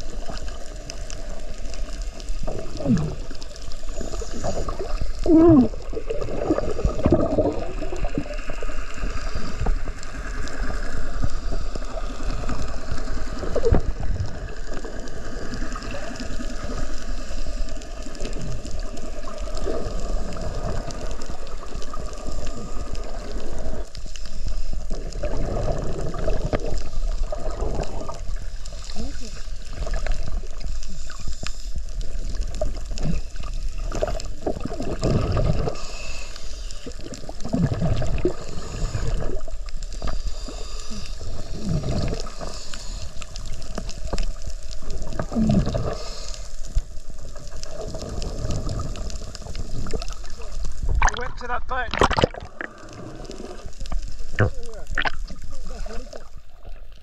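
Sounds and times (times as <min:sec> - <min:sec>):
exhaled bubbles rising: 0:00.0 - 0:17.0, 0:24.9 - 0:28.6, 0:32.0 - 0:35.8, 0:36.8 - 0:39.7, 0:41.3 - 0:42.4, 0:43.7 - 0:46.0, 0:47.2 - 0:57.0
scuba diver breathing underwater: 0:02.4 - 0:51.2, 0:51.9 - 0:56.4.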